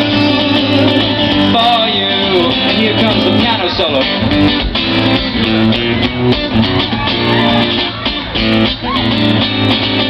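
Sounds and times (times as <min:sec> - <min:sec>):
acoustic guitar solo: 0:00.0 - 0:10.0.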